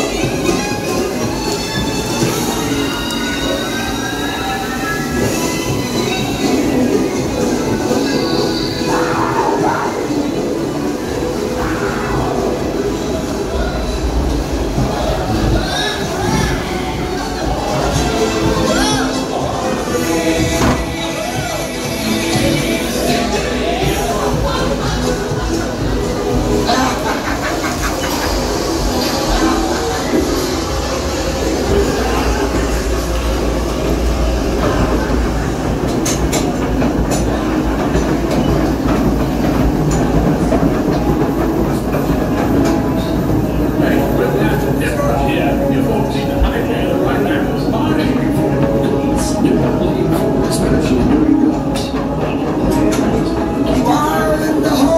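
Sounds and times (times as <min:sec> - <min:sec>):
ride boat rumbling and rattling: 0:00.0 - 0:54.9.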